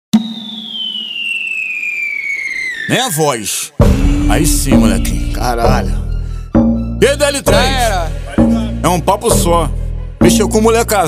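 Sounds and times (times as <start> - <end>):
whistle tone gliding downward: 0.1 - 3.8.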